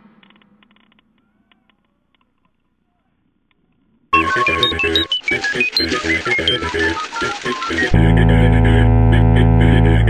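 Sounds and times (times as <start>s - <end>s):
electronic background music: 4.2s - 10.0s.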